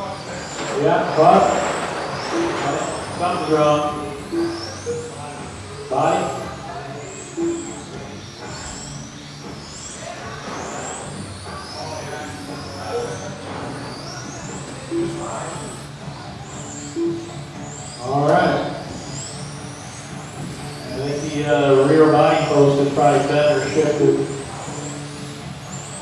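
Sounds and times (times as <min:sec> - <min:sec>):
rc car motors whining: 0:00.0 - 0:26.0
short beeps: 0:00.6 - 0:09.0, 0:12.8 - 0:15.9, 0:16.5 - 0:18.7.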